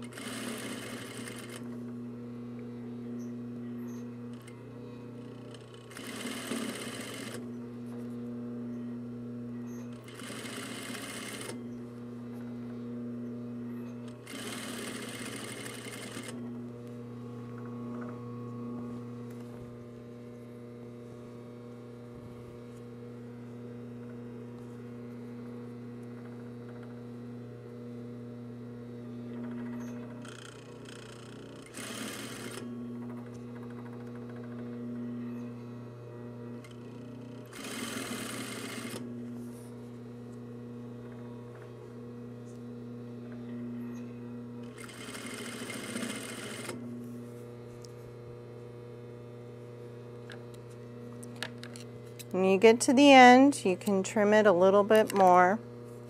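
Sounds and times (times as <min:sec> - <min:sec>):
sewing machine stitching: 0:00.0 - 0:01.7, 0:05.4 - 0:07.4, 0:09.9 - 0:11.6, 0:14.0 - 0:16.5, 0:29.4 - 0:34.7, 0:36.6 - 0:39.0, 0:44.6 - 0:46.8
steady hum: 0:00.1 - 0:31.7, 0:46.4 - 0:56.0.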